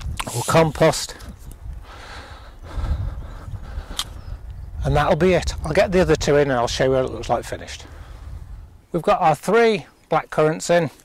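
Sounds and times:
soil rustling and scraping by hand: 0.0s - 1.6s
sharp click: 3.9s - 4.2s.

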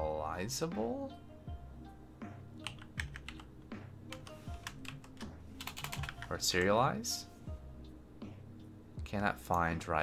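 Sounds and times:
quiet background music: 0.0s - 10.0s
typing on computer keyboard: 2.6s - 3.5s, 4.1s - 6.2s.

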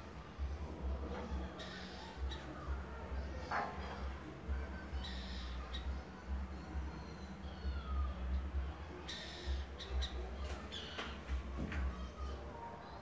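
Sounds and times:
small birds chirping: 0.1s - 13.0s.

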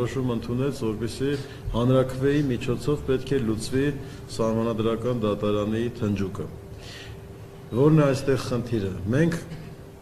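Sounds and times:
man speaking into microphones: 0.0s - 6.7s, 7.7s - 9.8s.

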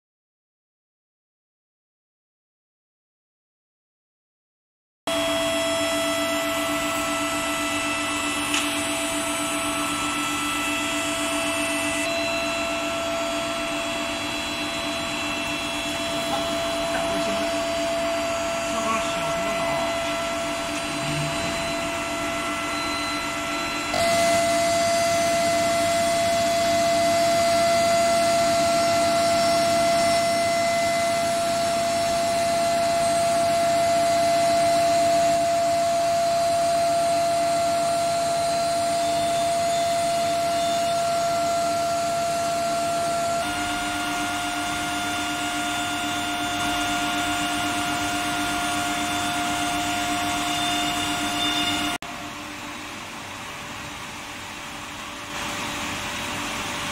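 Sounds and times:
electrical hum and whine: 5.1s - 56.9s.

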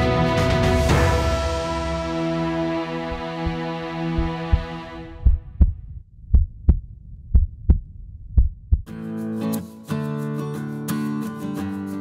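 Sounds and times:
strummed guitar music: 0.0s - 5.0s, 8.9s - 12.0s
held synth chord: 0.0s - 5.2s
heartbeat thumps: 3.1s - 8.9s.

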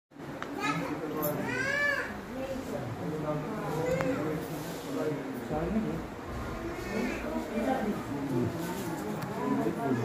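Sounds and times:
people talking: 0.5s - 10.0s.

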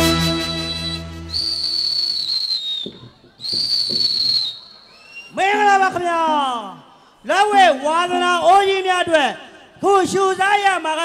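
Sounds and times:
high-pitched whistle blasts: 0.0s - 5.4s.

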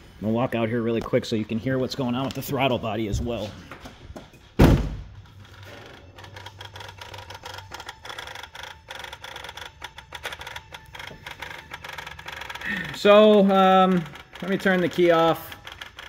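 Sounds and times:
throttle body ticking: 5.3s - 16.0s.

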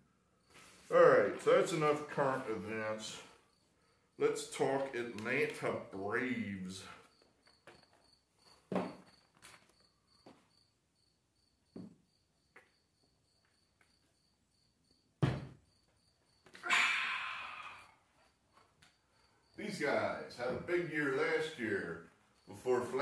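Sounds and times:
insect chirping: 0.0s - 5.2s, 5.8s - 23.0s.

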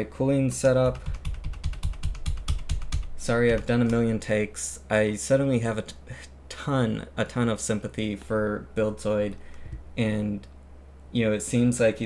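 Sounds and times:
computer keyboard clicks: 0.8s - 4.1s.

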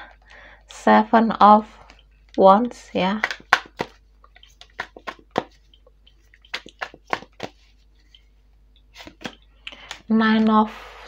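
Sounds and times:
cards clicking and flicking: 3.1s - 5.8s, 6.4s - 8.2s, 8.9s - 10.5s.

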